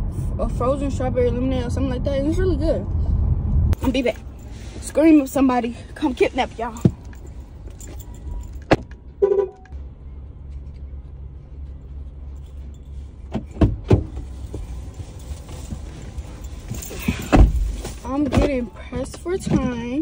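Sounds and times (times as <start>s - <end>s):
car cabin hum: 3.8s - 9.7s, 10.4s - 20.0s
car door shutting thud: 17.1s - 17.7s.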